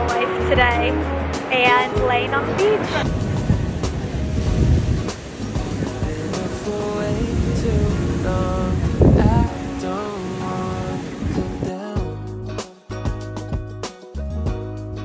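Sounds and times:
wind buffeting microphone: 0.0s - 11.8s
ocean surf breaking on beach: 0.0s - 11.9s
background music: 0.0s - 15.0s.

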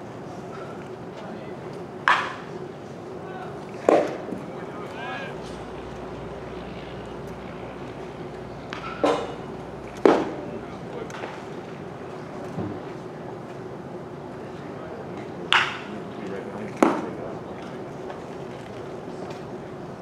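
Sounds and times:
steady hum: 0.0s - 20.0s.

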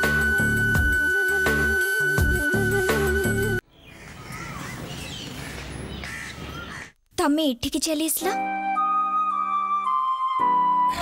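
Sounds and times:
birds chirping: 3.6s - 7.0s.

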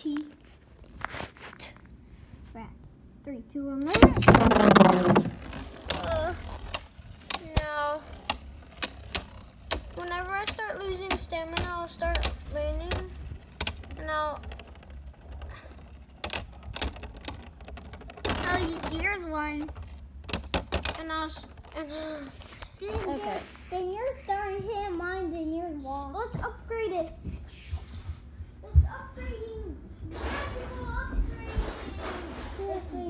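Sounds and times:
spinning tops clashing: 3.9s - 21.6s.

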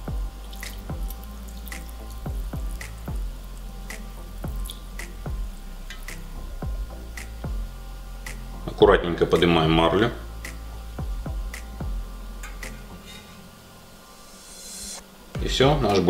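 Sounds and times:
background music with steady beat: 0.0s - 16.0s.

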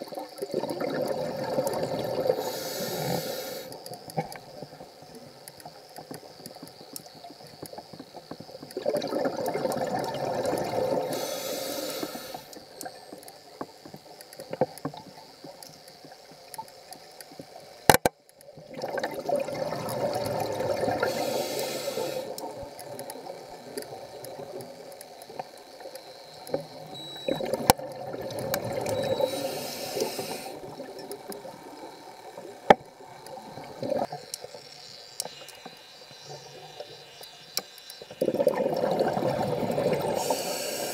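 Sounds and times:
sharp underwater clicks and pops: 0.0s - 11.3s, 11.9s - 40.9s
faint steady underwater hiss: 0.0s - 40.9s.

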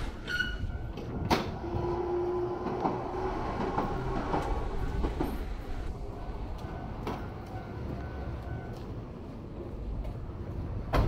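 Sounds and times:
train wheels clacking: 0.0s - 9.0s
train rumbling past: 0.0s - 11.0s.

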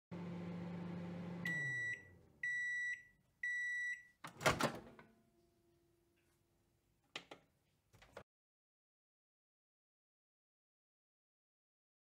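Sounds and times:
microwave oven humming: 0.1s - 3.6s
microwave beeps: 0.6s - 4.2s.

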